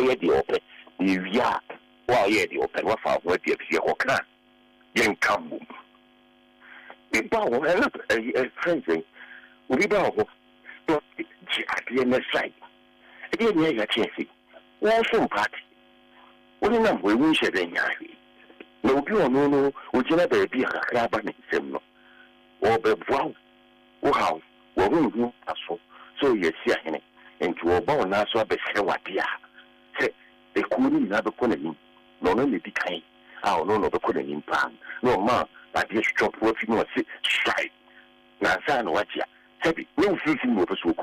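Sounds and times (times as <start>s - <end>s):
man speaking: 0.0s - 4.3s, 5.0s - 5.8s, 6.7s - 9.1s, 9.7s - 15.6s, 16.6s - 21.8s, 22.6s - 23.4s, 24.0s - 37.7s, 38.4s - 41.0s
faint electrical hum: 0.0s - 41.0s.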